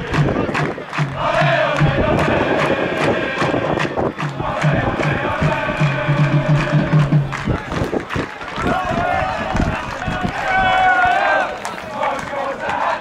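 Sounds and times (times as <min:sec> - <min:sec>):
crowd chanting: 0:00.0 - 0:13.0
supporters shouting: 0:00.0 - 0:13.0.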